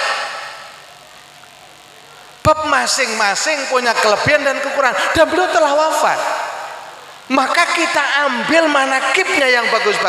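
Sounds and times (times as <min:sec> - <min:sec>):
amplified speech echo: 0:00.0 - 0:00.8, 0:01.6 - 0:10.0.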